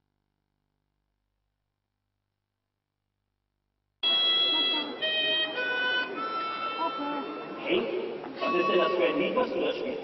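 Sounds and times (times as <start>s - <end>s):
harmonica playing slow tune: 4.0s - 7.6s, 8.4s - 9.4s.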